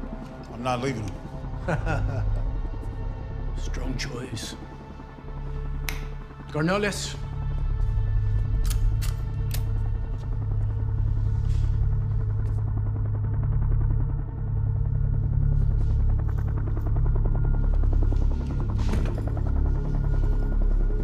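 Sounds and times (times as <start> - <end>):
tense film score: 0.0 - 21.0
deep bass drone: 7.2 - 21.0
sharp clicks: 8.6 - 9.8.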